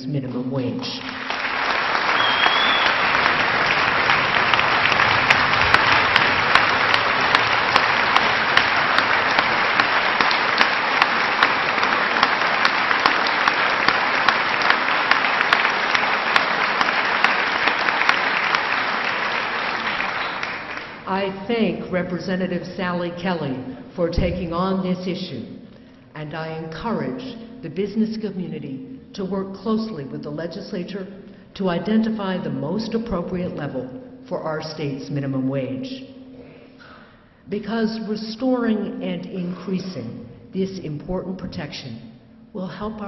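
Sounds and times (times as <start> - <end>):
large audience applauding: 1.0 - 21.1.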